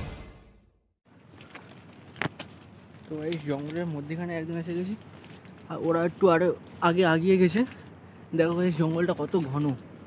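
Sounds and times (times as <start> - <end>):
footsteps on sandy path: 1.0 - 10.0
brushing through undergrowth: 1.1 - 10.0
sharp crackles: 1.1 - 10.0.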